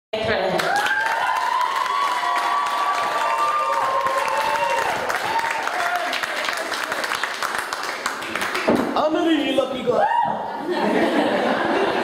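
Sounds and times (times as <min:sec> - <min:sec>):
audience applauding: 0:00.6 - 0:09.3.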